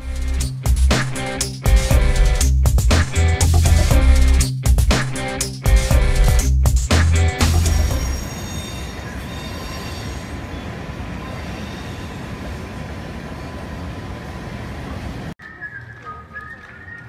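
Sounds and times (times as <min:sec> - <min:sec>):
loud music: 0:00.0 - 0:08.2
freight train rolling: 0:07.4 - 0:16.2
wheels squealing: 0:08.0 - 0:17.0.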